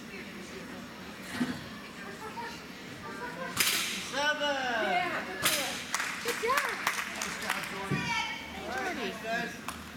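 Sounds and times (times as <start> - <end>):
sharp cracks: 3.6 - 4.1.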